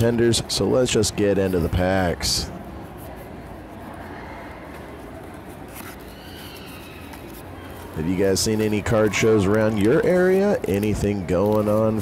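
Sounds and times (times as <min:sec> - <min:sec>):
steady low background noise: 0:00.0 - 0:12.0.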